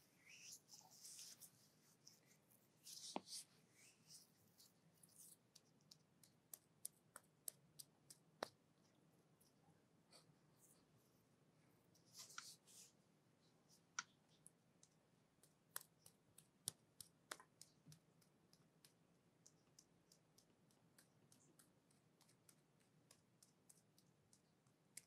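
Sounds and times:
hands rubbing cream on skin: 0.2 - 7.2
soft sticky clicks and crackles: 4.1 - 10.2, 13.8 - 25.0.

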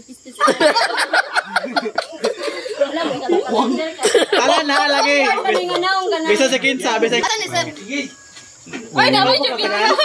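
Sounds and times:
crickets chirping: 0.0 - 10.0
people's voices: 0.0 - 10.0.

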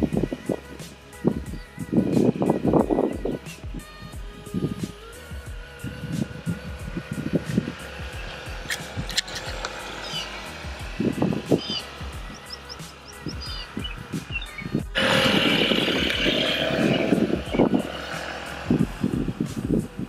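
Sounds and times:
background music with steady beat: 0.0 - 20.0.

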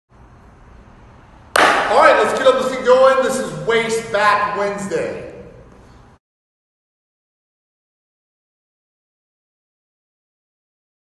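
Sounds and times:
sharp hand clap: 1.5 - 2.1
man's voice: 1.9 - 5.5.

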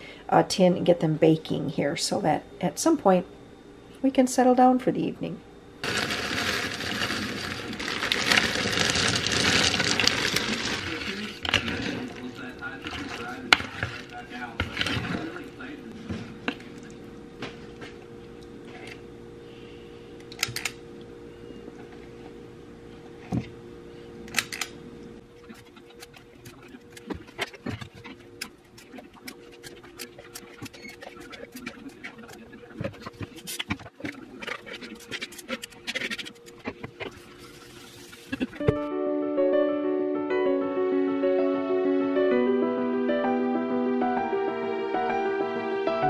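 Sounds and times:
berries rattling into plastic bowl: 5.8 - 12.3.

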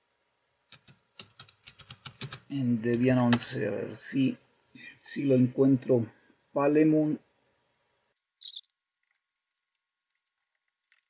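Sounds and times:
high-pitched chirp: 8.4 - 8.7.

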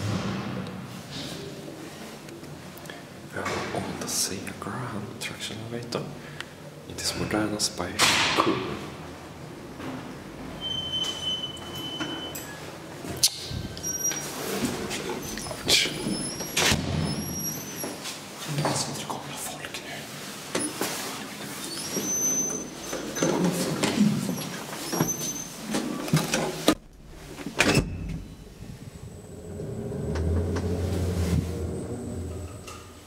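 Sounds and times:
elevator rumble: 26.7 - 33.0.

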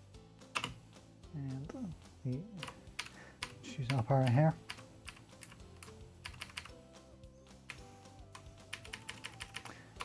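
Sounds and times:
keyboard typing: 0.6 - 0.8, 2.6 - 6.7, 7.7 - 10.0.

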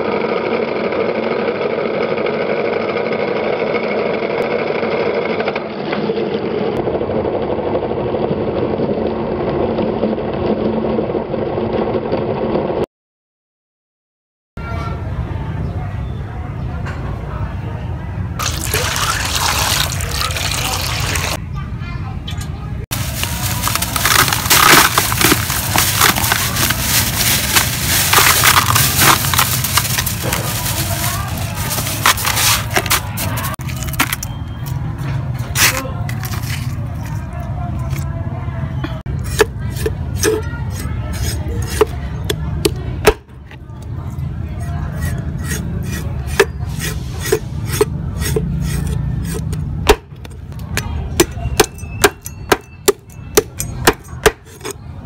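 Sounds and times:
crushed ice crunching: 18.4 - 21.4, 22.9 - 34.8, 35.5 - 38.1, 51.2 - 54.8
cleaver chopping: 39.3 - 40.4, 41.2 - 43.3, 47.3 - 54.7.

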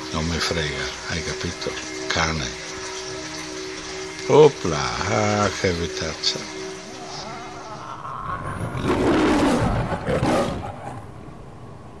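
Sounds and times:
lion roaring: 6.9 - 11.3.

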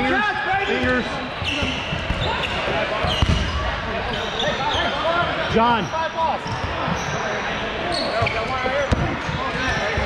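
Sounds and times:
sneakers squeaking on court: 0.7 - 5.0, 6.4 - 10.0
ball impact: 3.0 - 3.6.

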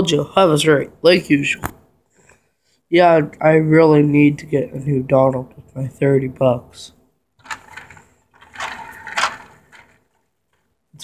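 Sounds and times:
toy trains clicking and rattling: 7.4 - 10.6.

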